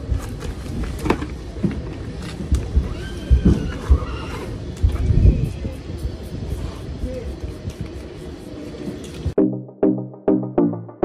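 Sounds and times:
horse whinnying: 2.8s - 4.6s.

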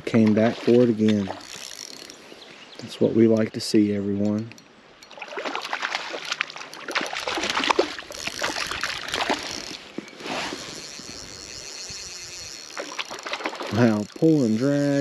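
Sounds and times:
fish splashing in water: 5.1s - 9.8s, 10.5s - 13.8s.

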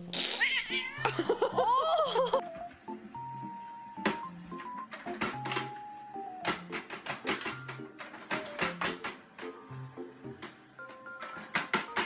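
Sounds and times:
soft background music: 0.1s - 12.0s
cat crying: 0.4s - 2.4s
woman laughing: 0.9s - 2.5s.

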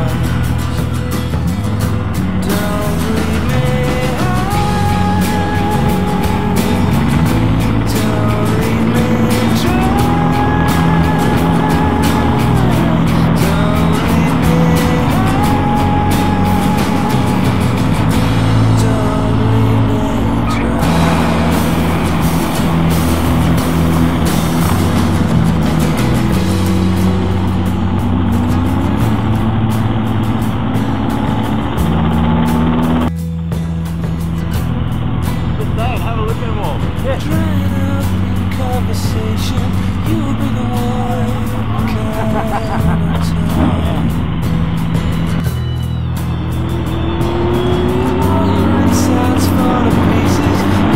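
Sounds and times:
motorcycle engine revving: 0.0s - 50.9s.

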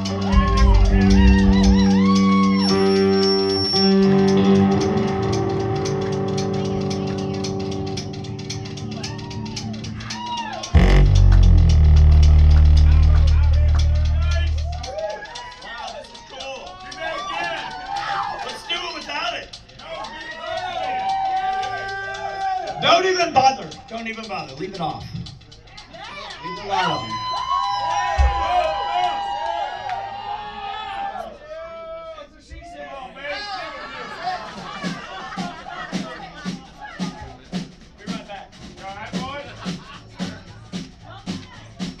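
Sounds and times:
voices shouting and calling out: 0.0s - 3.4s
live rockabilly band: 0.0s - 15.5s, 34.4s - 42.0s
loud low rumble: 0.3s - 2.1s, 10.8s - 14.8s.

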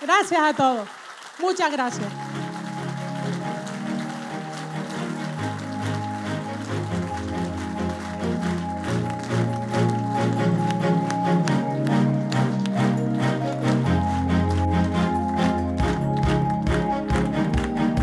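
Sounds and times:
audience clapping: 0.0s - 18.0s
music with held chords: 2.1s - 18.0s.

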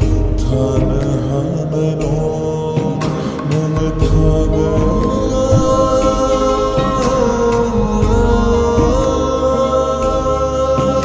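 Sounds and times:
bass-heavy backing track: 0.0s - 11.0s
person singing long notes: 0.0s - 11.0s
drum hits: 3.5s - 9.3s.

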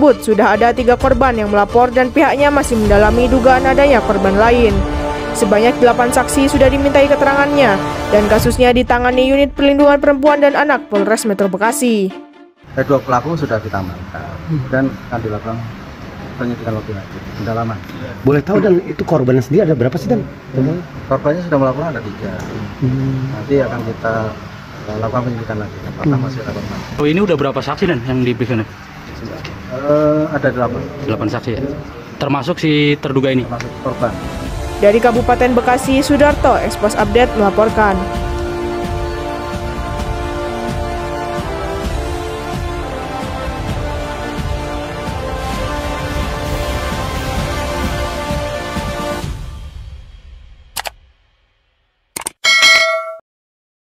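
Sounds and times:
notification bell chime: 52.4s - 53.2s.

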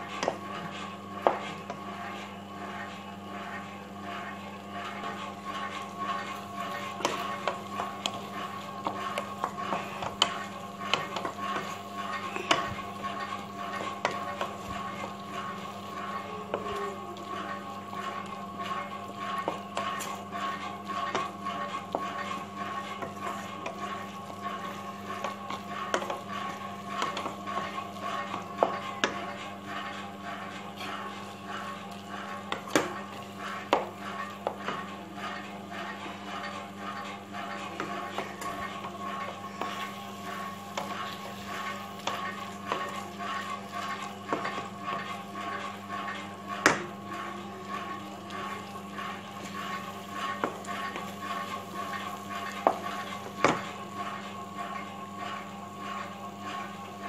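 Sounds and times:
spatula scraping a pan: 0.0s - 57.0s
steady hum: 0.0s - 57.0s.

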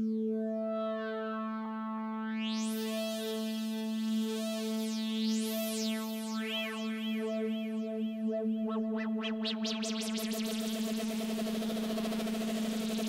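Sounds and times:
synthesizer filter sweep: 2.4s - 13.0s.

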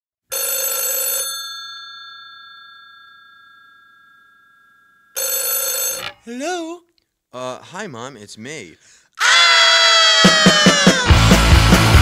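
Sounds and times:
telephone bell ringing: 0.3s - 6.2s.

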